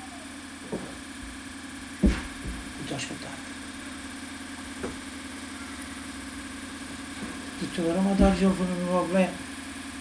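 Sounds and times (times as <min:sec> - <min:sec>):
steady mechanical hum: 0:00.0 - 0:10.0.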